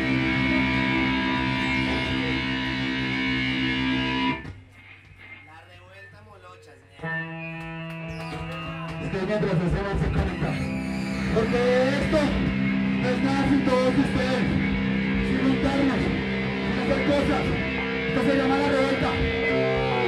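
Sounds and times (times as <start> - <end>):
rock band playing: 0.0 - 4.6, 7.0 - 20.0
distorted electric guitar chords: 0.0 - 5.5, 7.0 - 20.0.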